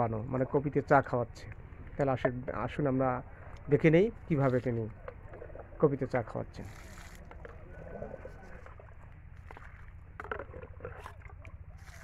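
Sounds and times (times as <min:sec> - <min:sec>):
steady low rumble: 0:00.0 - 0:12.0
liquid sloshing and splashing: 0:03.2 - 0:12.0.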